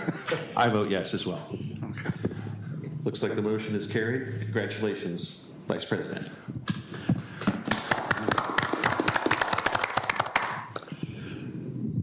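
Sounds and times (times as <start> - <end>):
small group applauding: 7.3 - 11.0.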